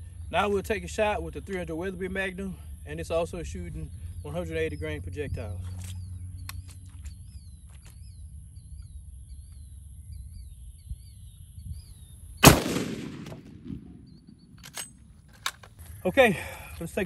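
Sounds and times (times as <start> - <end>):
rifle shot: 12.4 - 15.0.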